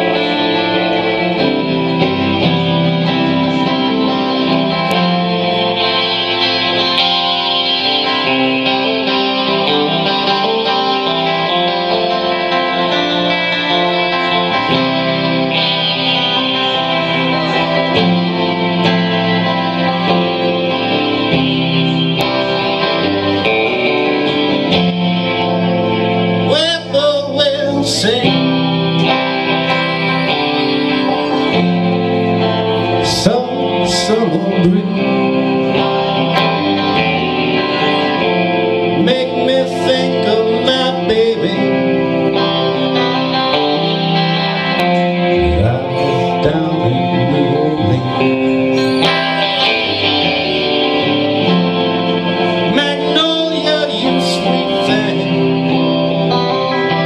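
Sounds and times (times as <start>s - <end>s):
electric guitar strummed: 0.0s - 57.0s
man singing: 26.2s - 29.3s, 32.9s - 36.9s, 38.8s - 43.5s, 45.0s - 57.0s.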